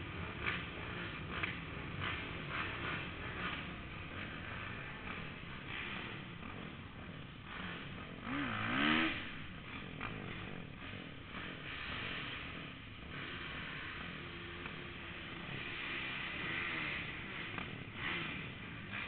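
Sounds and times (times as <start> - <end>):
motorcycle engine revving: 0.0 - 19.0.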